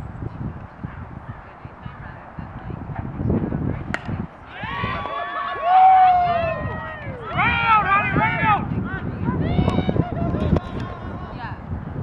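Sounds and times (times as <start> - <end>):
bat striking softball: 3.9 - 4.2.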